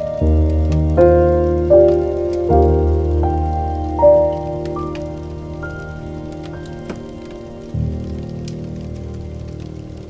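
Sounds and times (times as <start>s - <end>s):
fire popping: 0.0s - 10.0s
slow peaceful music: 0.0s - 10.0s
wood fire crackling: 0.0s - 10.0s.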